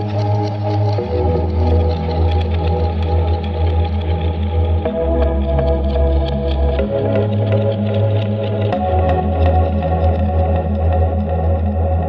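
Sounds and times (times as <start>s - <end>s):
electronica track: 0.0s - 12.0s.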